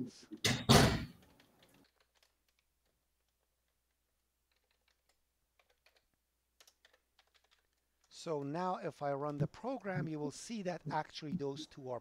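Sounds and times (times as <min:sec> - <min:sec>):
faint keyboard typing clicks: 0:01.1 - 0:10.1.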